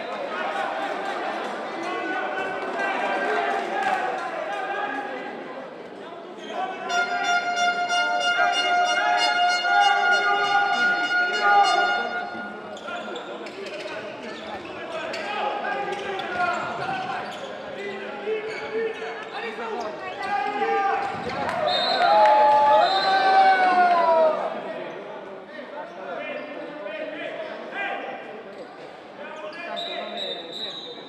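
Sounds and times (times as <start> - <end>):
voices echoing in sports hall: 0.0 - 31.0.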